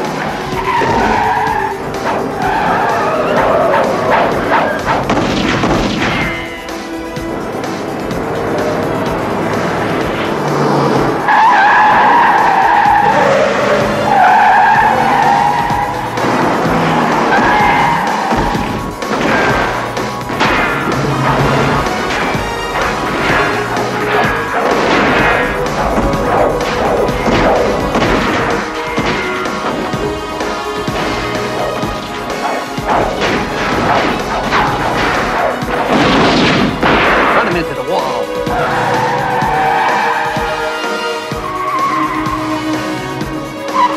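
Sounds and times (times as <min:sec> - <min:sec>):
loud echoing crashes and impacts: 0:00.0 - 0:14.2, 0:14.8 - 0:40.8
car engine noise: 0:00.0 - 0:43.9
car tyres squealing: 0:00.0 - 0:43.9
film score music: 0:00.0 - 0:43.9.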